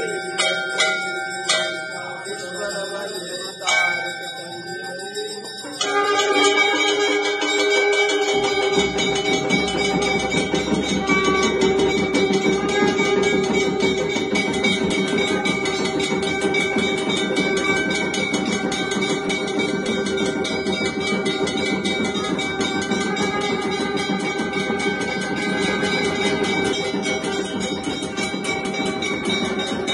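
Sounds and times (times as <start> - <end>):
temple bells ringing: 0.0 - 29.9
hourglass drum beaten rapidly: 5.6 - 29.9
long blown conch tone: 5.8 - 29.9.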